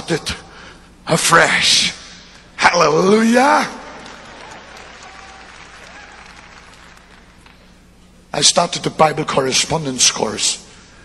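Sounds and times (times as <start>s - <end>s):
low steady hum: 0.0s - 11.0s
congregation applauding: 3.5s - 7.7s.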